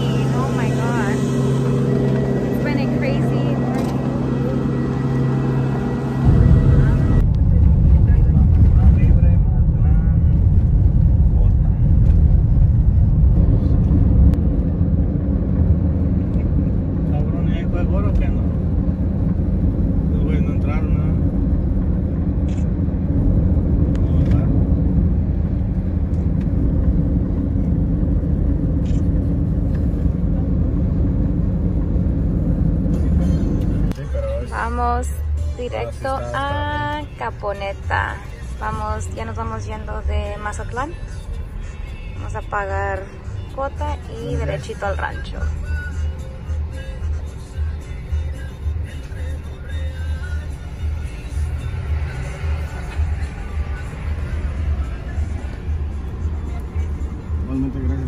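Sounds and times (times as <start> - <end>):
car driving low rumble: 0.0 - 58.0.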